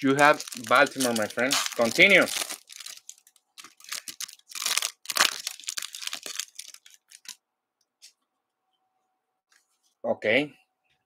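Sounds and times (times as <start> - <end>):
plastic wrapper tearing and crinkling: 0.0 - 7.4.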